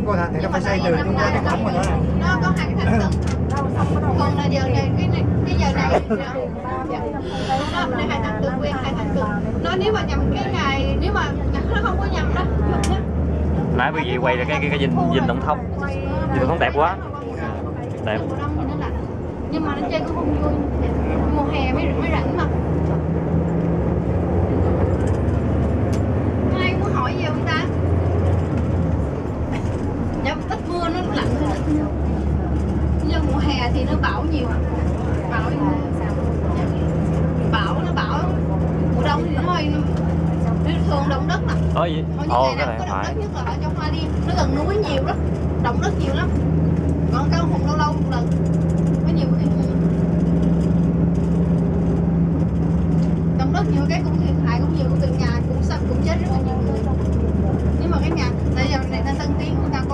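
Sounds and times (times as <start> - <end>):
bus engine drone: 0.0 - 59.9.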